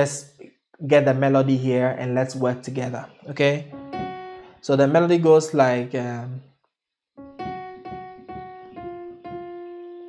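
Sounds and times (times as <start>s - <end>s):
slow piano melody: 1.1s - 5.6s, 7.2s - 10.0s.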